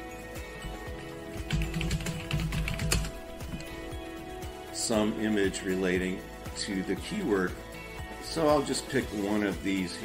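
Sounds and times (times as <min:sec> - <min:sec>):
background music: 0:00.0 - 0:10.0
typing on computer keyboard: 0:01.4 - 0:03.7.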